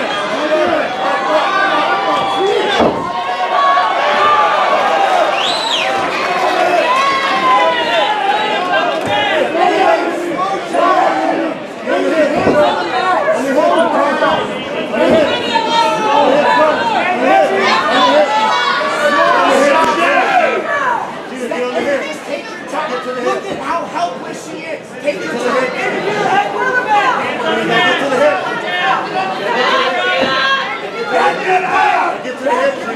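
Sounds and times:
crowd shouting and cheering: 0:00.0 - 0:32.9.

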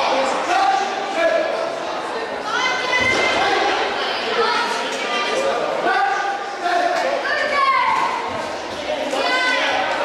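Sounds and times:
voices chattering and calling out: 0:00.0 - 0:10.0.

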